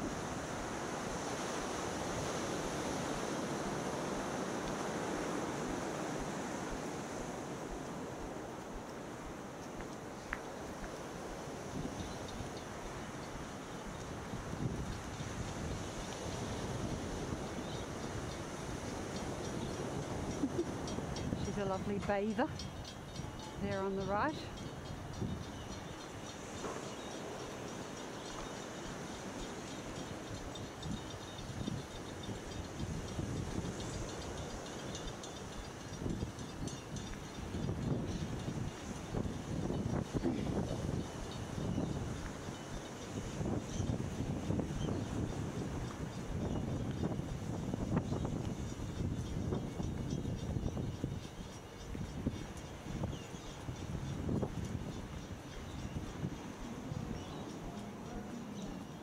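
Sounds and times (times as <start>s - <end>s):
wind buffeting microphone: 10.7s - 59.0s.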